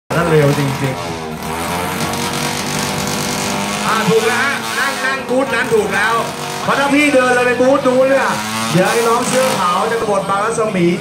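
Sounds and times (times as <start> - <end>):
motorcycle engine running: 0.1 - 11.0.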